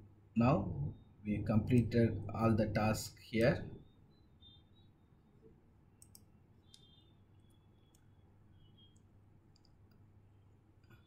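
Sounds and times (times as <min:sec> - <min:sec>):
low room hum: 0:00.0 - 0:11.0
computer mouse clicks: 0:06.0 - 0:08.2, 0:08.8 - 0:10.1.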